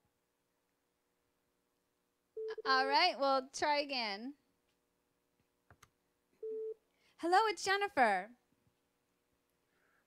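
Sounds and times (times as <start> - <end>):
short steady beep: 6.4 - 6.8.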